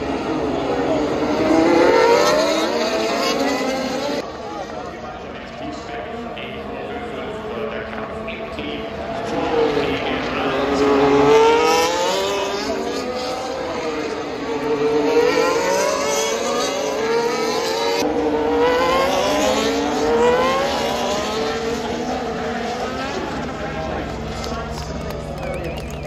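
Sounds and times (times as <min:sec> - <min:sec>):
racing car engines passing: 0:00.0 - 0:26.0.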